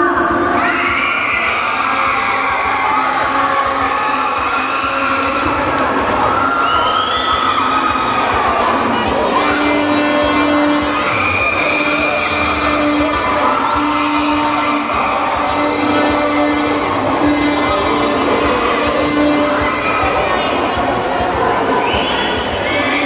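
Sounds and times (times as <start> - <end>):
crowd cheering and shouting: 0.0 - 23.0
music playing: 1.3 - 23.0.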